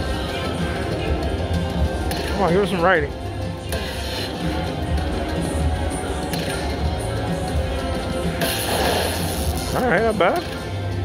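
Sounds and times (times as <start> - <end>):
slot machine bonus music: 8.1 - 11.0.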